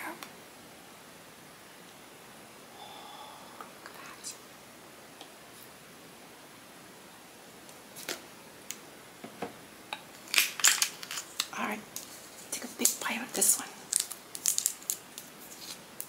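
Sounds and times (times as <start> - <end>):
low hiss: 0.0 - 16.0
crisp clicks and crackles: 10.1 - 16.0.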